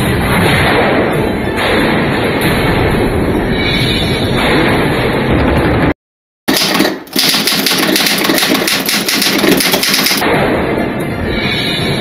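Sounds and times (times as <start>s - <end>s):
rapid rattling clatter: 6.5s - 10.2s.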